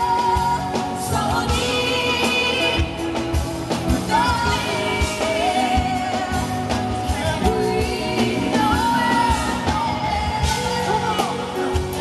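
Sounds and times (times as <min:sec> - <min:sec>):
band with steady drum beat: 0:00.0 - 0:12.0
female singer with vibrato: 0:00.0 - 0:12.0.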